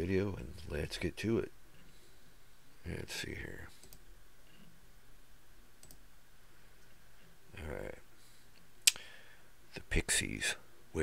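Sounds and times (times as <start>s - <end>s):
computer mouse click: 3.8s - 4.7s, 5.8s - 6.0s.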